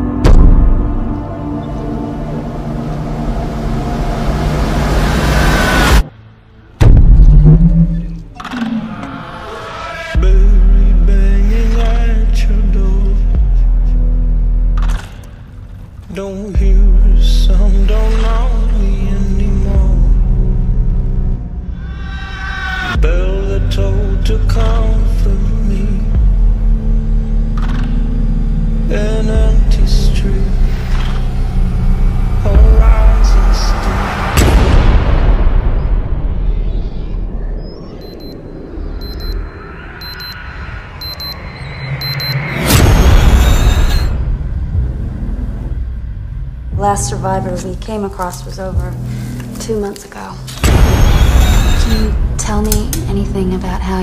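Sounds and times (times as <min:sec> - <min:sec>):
deep loud rumble: 0:00.0 - 0:08.4
low rumble: 0:00.0 - 0:09.5, 0:10.2 - 0:22.3, 0:23.0 - 0:54.0
deep boom hit: 0:00.1 - 0:01.6, 0:06.8 - 0:08.4
high-pitched electronic beeping: 0:38.0 - 0:44.2.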